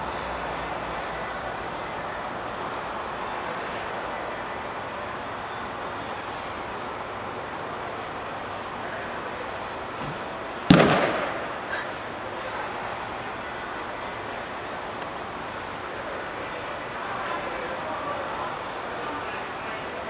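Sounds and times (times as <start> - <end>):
steady background noise: 0.0 - 20.0
baseball popping into mitt: 10.0 - 11.4.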